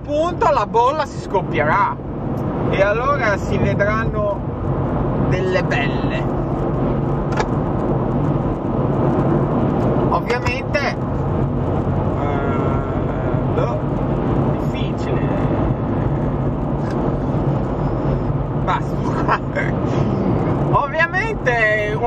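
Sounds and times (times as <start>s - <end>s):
car road and engine hum: 0.0s - 22.0s.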